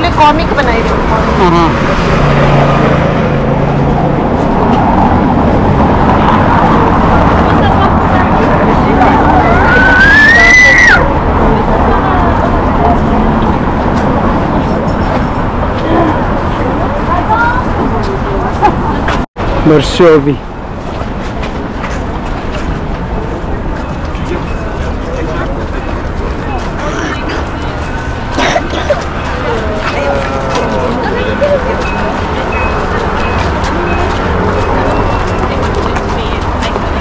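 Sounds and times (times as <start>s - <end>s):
crowd voices: 0.0s - 37.0s
road traffic rumble: 0.0s - 37.0s
street sound haze: 0.0s - 37.0s.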